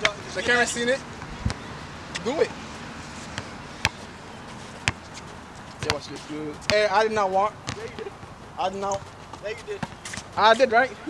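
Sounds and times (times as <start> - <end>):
basketball bouncing on asphalt: 1.2 - 1.8, 3.3 - 10.6.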